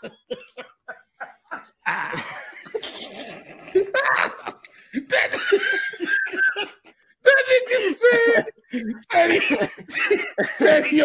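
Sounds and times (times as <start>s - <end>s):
person laughing hard: 0.0s - 6.9s.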